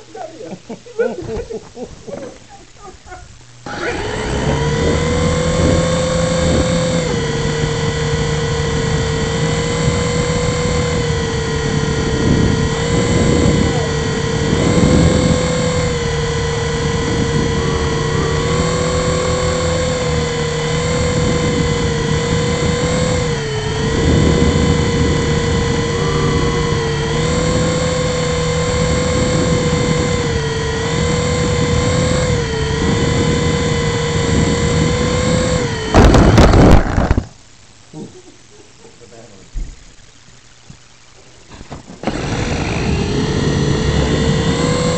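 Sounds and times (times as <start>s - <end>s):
small rotor motors whining: 2.1s - 37.4s, 41.4s - 44.9s
helicopter crashing to floor: 35.9s - 37.3s.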